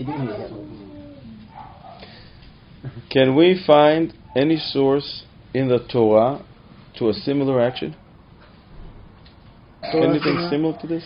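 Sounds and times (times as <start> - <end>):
man speaking: 0.0 - 1.2, 9.8 - 11.0.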